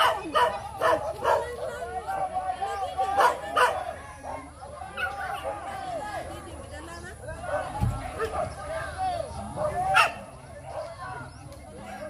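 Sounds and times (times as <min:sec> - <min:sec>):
dog barking: 0:00.0 - 0:01.6, 0:03.2 - 0:05.6, 0:09.6 - 0:11.0
people talking: 0:00.0 - 0:12.0.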